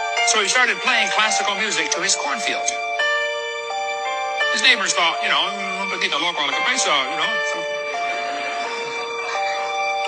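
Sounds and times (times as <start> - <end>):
background music of held notes: 0.0 - 10.0.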